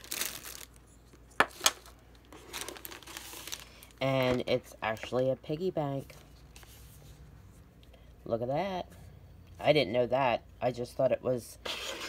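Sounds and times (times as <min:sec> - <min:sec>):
plastic packaging crinkling: 0:00.0 - 0:06.6.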